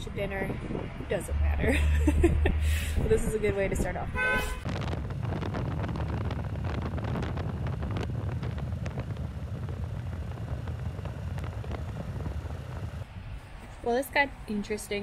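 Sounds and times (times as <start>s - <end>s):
motorcycle engine rumble: 0.0s - 13.9s
wind buffeting microphone: 0.0s - 15.0s.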